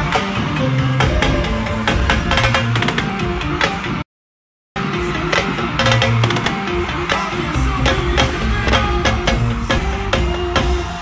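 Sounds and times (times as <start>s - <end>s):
percussion strikes: 1.0s - 3.5s, 4.9s - 11.0s.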